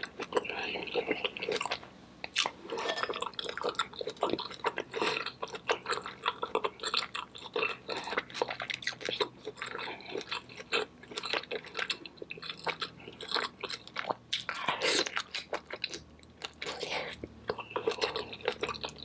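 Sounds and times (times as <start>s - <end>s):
wet chewing and biting: 0.0s - 19.0s.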